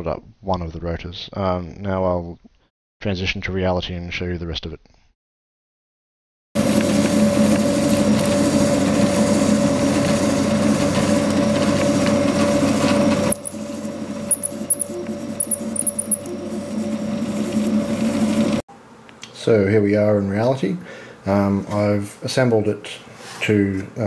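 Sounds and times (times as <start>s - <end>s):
printer motors and fan humming: 6.6s - 18.6s.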